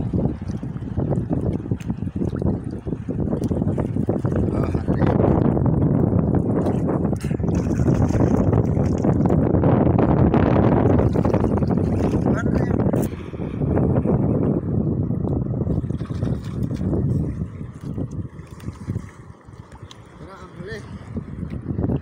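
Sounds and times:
sea water sloshing and splashing: 0.0 - 5.2, 6.0 - 9.5, 10.7 - 13.6, 15.6 - 22.0
wind rumbling on microphone: 0.0 - 22.0.

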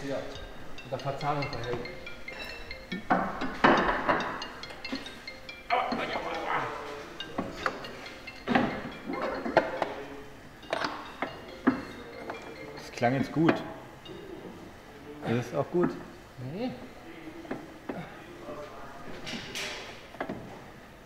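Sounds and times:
metallic clinks and knocks: 0.0 - 14.6
background music: 0.0 - 14.9.

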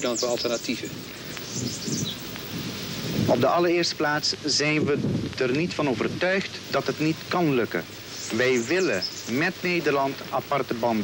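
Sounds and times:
rustling leaves: 0.0 - 11.0
wind: 0.0 - 11.0.

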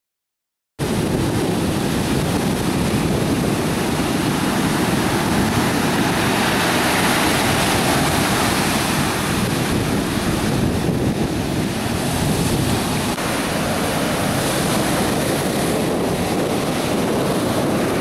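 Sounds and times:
ocean surf breaking on beach: 0.8 - 18.0
wind rumble on microphone: 0.8 - 18.0.

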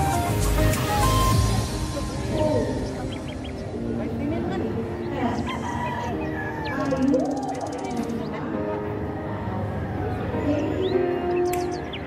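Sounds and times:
rooster crowing: 5.4 - 7.0.

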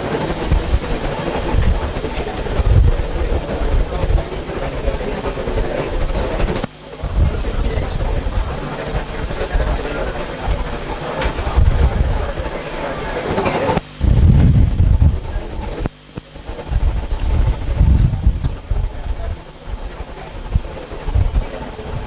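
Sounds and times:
murmur of voices: 0.0 - 22.0
steady rumbling noise: 0.0 - 22.0.

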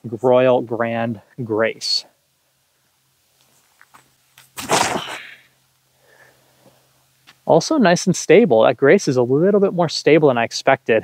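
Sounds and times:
faint footsteps on tee pad: 3.3 - 5.0, 6.6 - 7.5
disc thrown whoosh: 4.4 - 5.4.

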